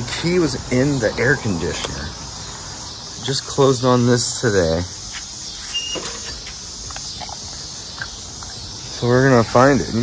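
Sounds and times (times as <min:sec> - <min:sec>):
insect chorus: 0:00.0 - 0:10.0.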